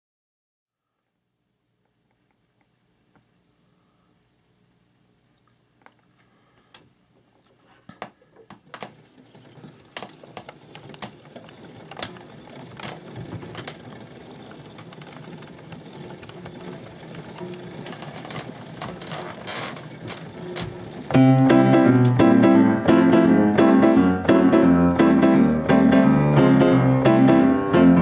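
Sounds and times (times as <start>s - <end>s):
mechanical knocks and clicks: 8.0s - 13.9s, 17.2s - 27.2s
steady mechanical whir: 8.8s - 21.2s.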